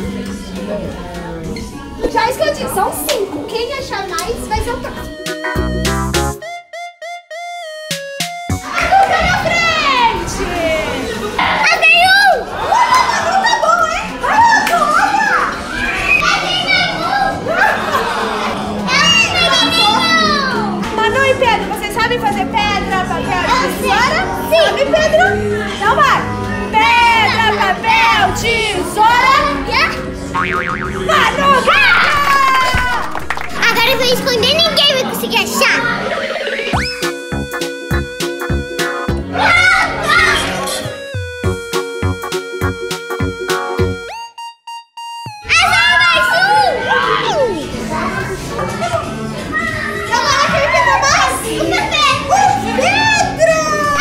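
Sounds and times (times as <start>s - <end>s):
children's lively voices: 0.0s - 5.7s, 8.6s - 37.1s, 39.0s - 41.2s, 45.4s - 54.0s
background music: 0.0s - 15.8s, 17.0s - 54.0s.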